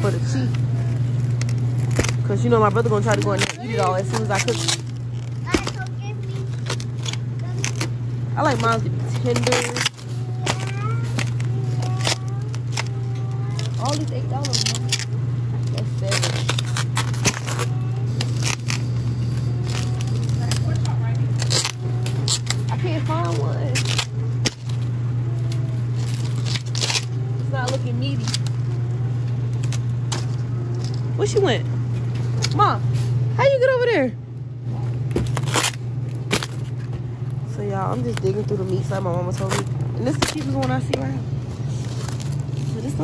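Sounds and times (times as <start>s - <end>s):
steady low hum: 0.0s - 43.0s
plastic packaging crinkling: 0.5s - 31.0s, 41.5s - 43.0s.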